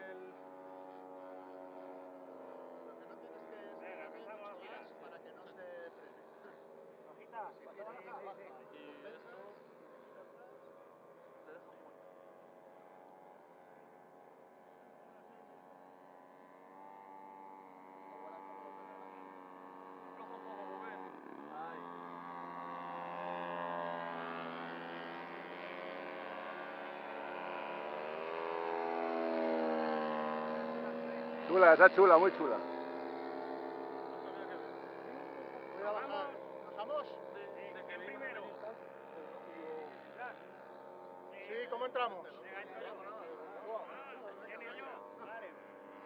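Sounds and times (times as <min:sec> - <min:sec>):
model aircraft engine drone: 0:00.0 - 0:46.0.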